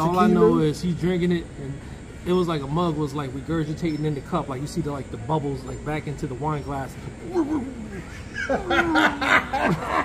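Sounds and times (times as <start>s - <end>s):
men laughing: 7.2s - 10.0s.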